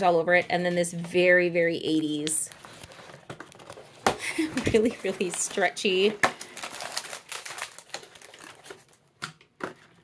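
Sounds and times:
thin plastic crinkling and clicking: 0:02.0 - 0:10.0.

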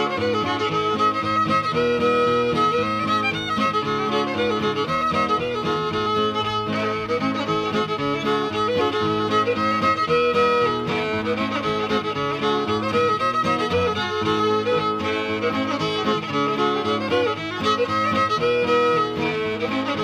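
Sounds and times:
fiddle playing: 0:00.0 - 0:20.0
guitar accompaniment: 0:00.0 - 0:20.0.

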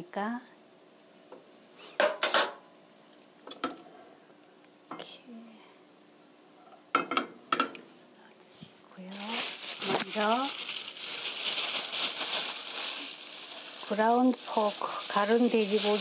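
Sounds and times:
oil sizzling in pan: 0:09.4 - 0:16.0.

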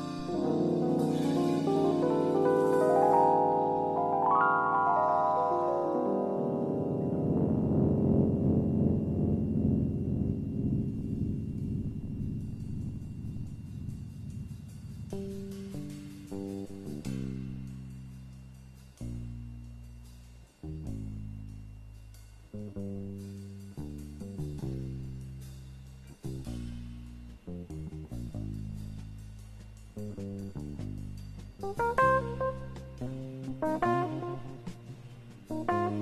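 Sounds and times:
plucked double bass solo: 0:31.6 - 0:34.9.

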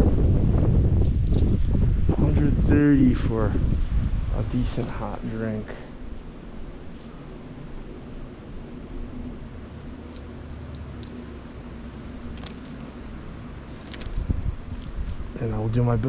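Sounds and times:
steady low rumble: 0:00.0 - 0:16.0
coins clinking in hand: 0:06.9 - 0:15.3.

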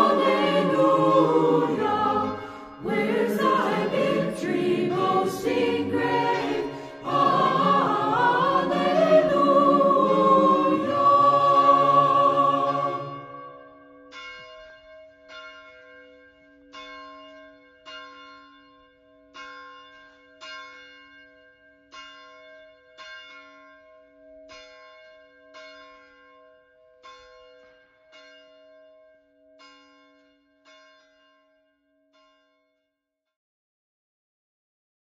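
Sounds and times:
church bells ringing: 0:00.0 - 0:32.6.

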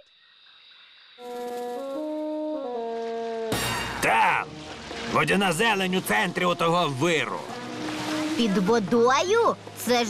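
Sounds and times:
brass melody: 0:01.2 - 0:08.9.

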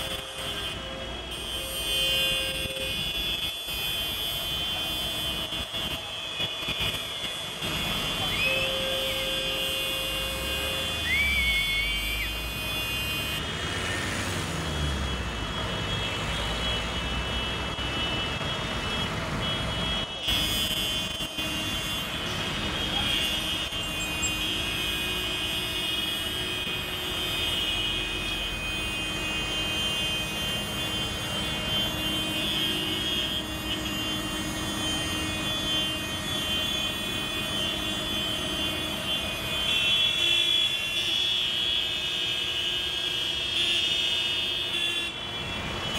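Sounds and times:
tractor engines droning: 0:00.0 - 0:43.0, 0:44.4 - 0:45.9
street traffic: 0:00.0 - 0:45.9.

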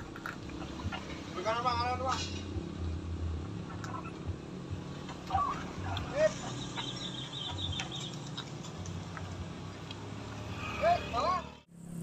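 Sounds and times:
voices calling: 0:00.0 - 0:02.5, 0:03.4 - 0:11.7
car engine idling: 0:00.0 - 0:11.3.

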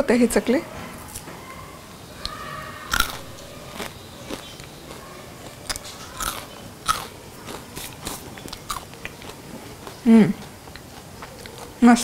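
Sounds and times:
person crunching crisp snack: 0:02.2 - 0:11.8.

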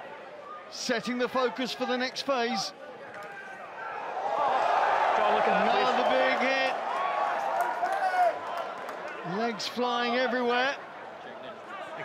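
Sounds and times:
crowd background noise: 0:00.0 - 0:12.0.

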